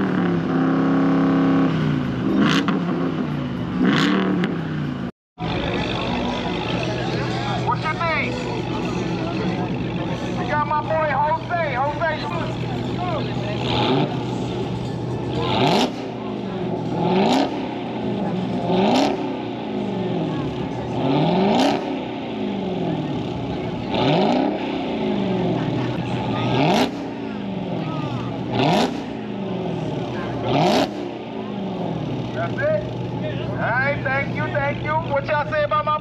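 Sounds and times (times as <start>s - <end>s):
car engine revving hard: 0.0s - 4.8s, 12.3s - 33.2s.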